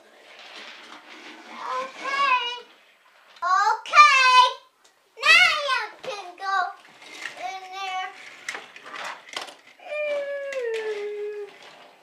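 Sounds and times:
toy cars clicking on wooden floor: 0:00.0 - 0:04.5, 0:05.2 - 0:12.0.

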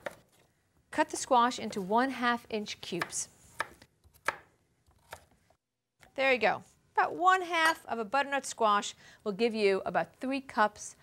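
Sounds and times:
knife cutting squash: 0:02.8 - 0:05.3.

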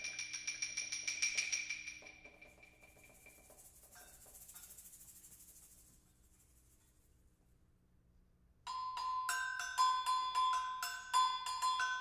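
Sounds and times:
tuned mallet percussion notes: 0:08.7 - 0:12.0.

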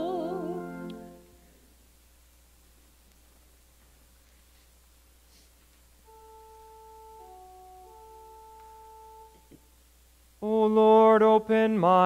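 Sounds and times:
soft sustained instrument note: 0:06.0 - 0:09.5.

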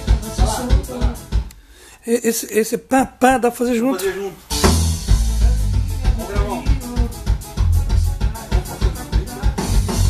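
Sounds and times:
band backing track: 0:00.0 - 0:01.6, 0:04.4 - 0:10.0
electric bass notes: 0:04.5 - 0:08.3.

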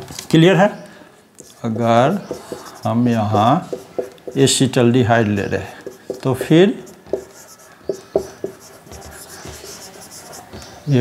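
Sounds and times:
marker scratching on whiteboard: 0:01.4 - 0:04.8, 0:05.4 - 0:10.9.

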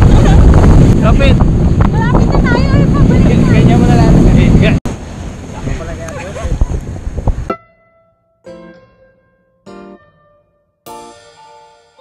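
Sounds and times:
water rushing: 0:00.0 - 0:07.5
wind buffeting microphone: 0:00.0 - 0:07.5.

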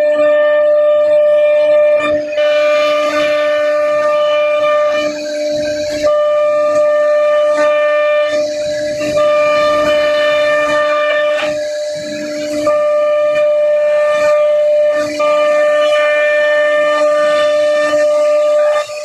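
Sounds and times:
cnc router spindle whining: 0:00.0 - 0:19.0.

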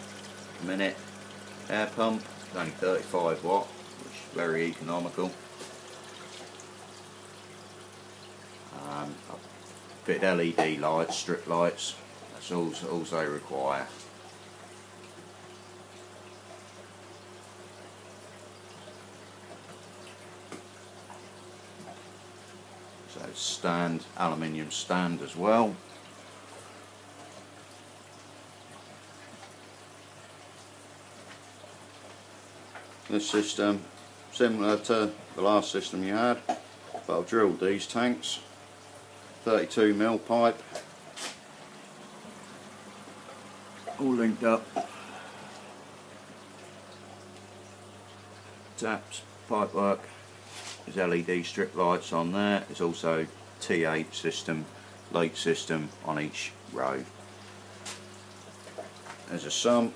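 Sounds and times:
pump hum: 0:00.0 - 0:59.9
water trickling: 0:00.0 - 0:59.9.

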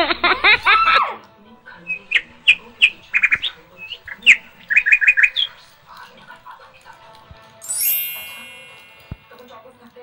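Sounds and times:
small bird chirping: 0:01.8 - 0:05.8.

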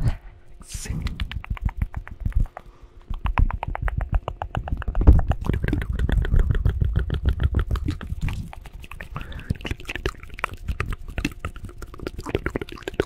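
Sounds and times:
rapid clicks and soft thumps: 0:01.1 - 0:08.5.

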